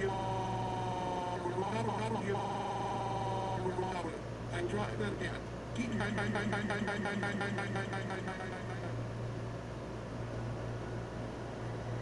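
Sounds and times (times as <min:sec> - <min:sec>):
voice-like electronic warble: 0:00.0 - 0:04.2, 0:05.8 - 0:09.0.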